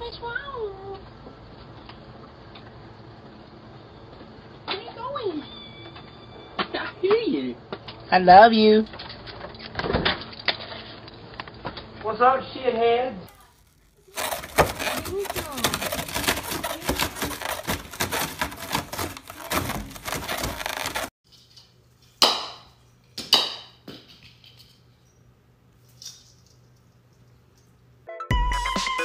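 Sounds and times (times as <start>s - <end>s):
cat tearing foam crackling: 13.3s - 21.1s.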